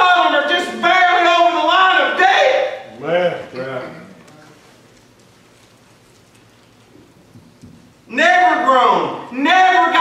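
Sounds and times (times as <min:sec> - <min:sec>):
faint steady hiss: 0:02.1 - 0:09.7.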